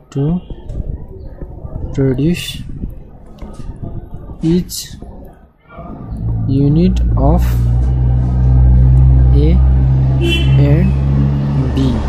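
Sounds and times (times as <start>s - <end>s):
loud steady low drone: 5.9s - 12.0s.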